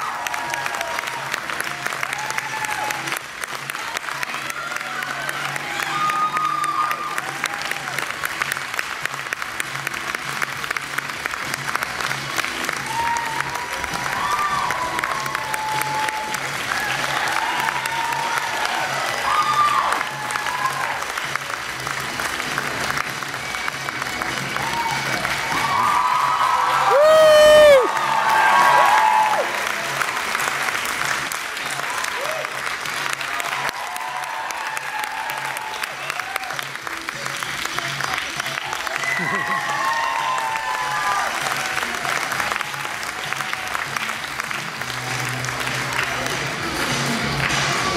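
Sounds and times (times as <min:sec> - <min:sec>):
audience applauding and cheering: 0:00.0 - 0:47.9
background music: 0:00.0 - 0:47.9
person whooping: 0:24.6 - 0:29.5, 0:38.9 - 0:41.3.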